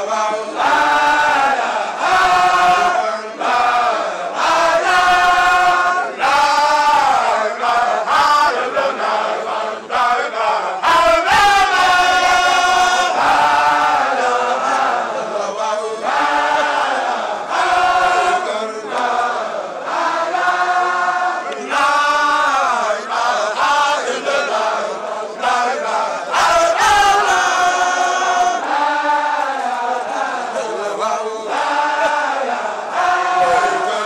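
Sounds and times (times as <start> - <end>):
men chanting in unison: 0.0 - 34.0.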